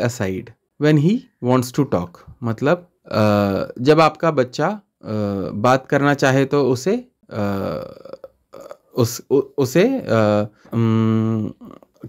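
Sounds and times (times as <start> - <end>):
man saying aah: 5.0 - 5.6, 7.3 - 9.3, 10.0 - 12.0.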